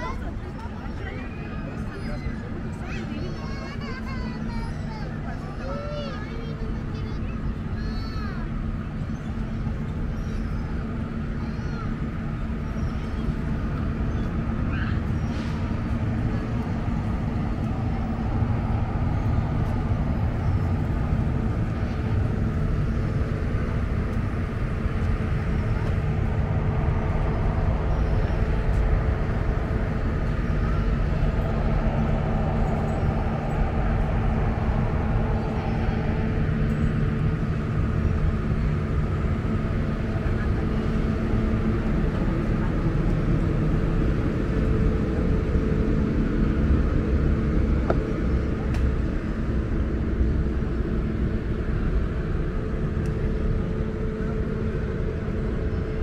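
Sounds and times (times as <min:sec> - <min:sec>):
constant low hum: 0:00.0 - 0:56.0
traffic noise: 0:00.0 - 0:56.0
indistinct voices: 0:10.8 - 0:46.0.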